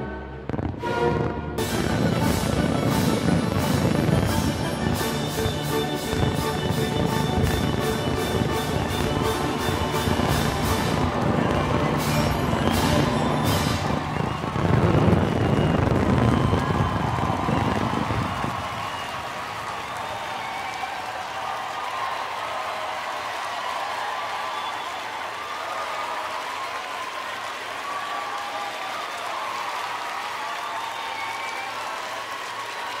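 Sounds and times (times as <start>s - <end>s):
fireworks booming: 0.4s - 20.0s
crowd cheering and applauding: 0.6s - 33.0s.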